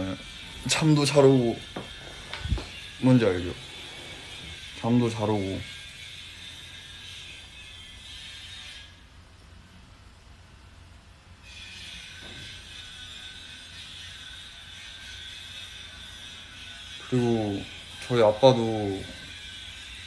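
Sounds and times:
high-pitched mechanical whine: 0.0 - 20.0.

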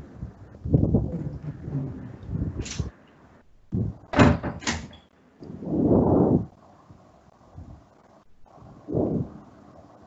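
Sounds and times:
longer muffled noise: 0.0 - 4.2, 5.2 - 10.0.

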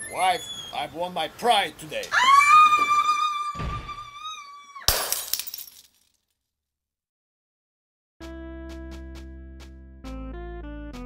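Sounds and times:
glass breaking: 4.9 - 6.2.

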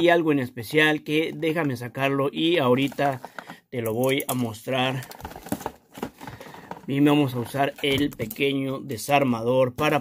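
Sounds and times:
packaging crinkling: 2.8 - 8.4.

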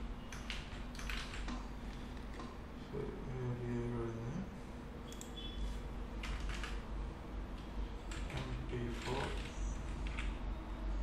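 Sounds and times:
computer keyboard typing: 0.3 - 2.5, 6.2 - 6.9, 8.0 - 10.4.

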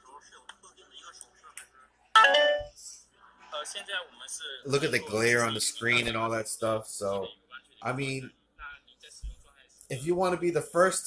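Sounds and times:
phone notification chime: 2.2 - 2.7.

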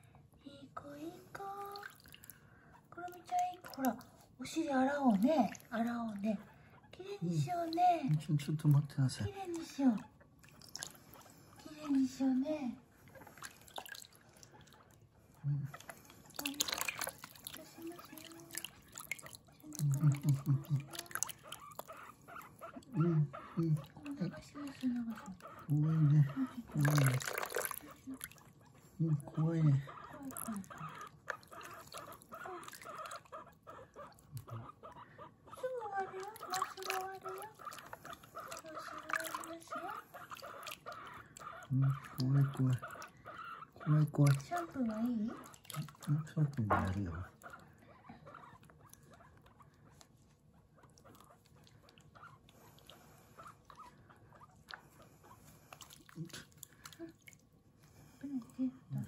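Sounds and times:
guinea pig squeaking: 2.9 - 13.7, 14.5 - 56.5
running water: 7.2 - 15.0, 15.6 - 33.4, 35.6 - 47.6.

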